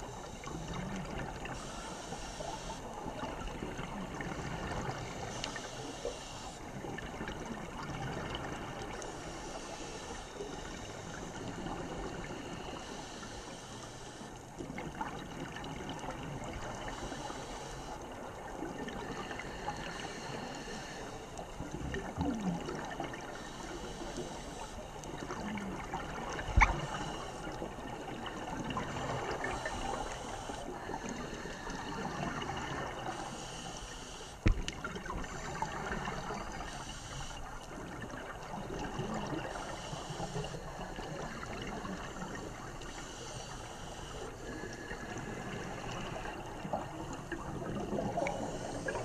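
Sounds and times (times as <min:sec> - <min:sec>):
gurgling water underwater: 0:00.0 - 0:49.0
hiss: 0:01.5 - 0:03.1, 0:05.0 - 0:06.7, 0:09.0 - 0:14.3, 0:16.8 - 0:18.0, 0:19.0 - 0:21.2, 0:23.2 - 0:24.8, 0:26.1 - 0:27.6, 0:29.0 - 0:34.5, 0:36.0 - 0:37.5, 0:39.5 - 0:41.2, 0:41.9 - 0:46.4, 0:48.2 - 0:49.0.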